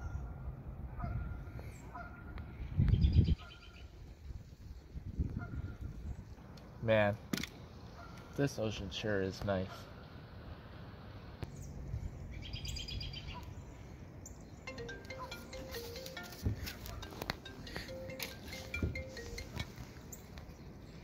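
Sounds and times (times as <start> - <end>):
simple melody of short notes: 14.7 - 20.0.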